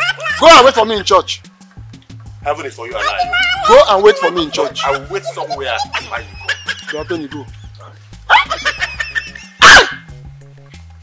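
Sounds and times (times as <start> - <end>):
background music: 0.0 - 11.0
dog barking: 8.3 - 8.6, 9.6 - 10.1.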